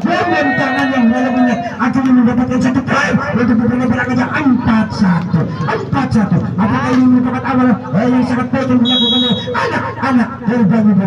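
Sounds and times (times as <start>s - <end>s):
man calling out drawn-out syllables: 0.0s - 11.0s.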